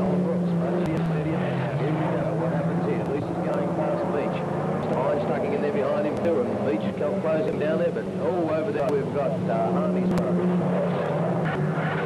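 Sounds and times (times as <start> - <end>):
race car engines revving: 0.0 - 12.0.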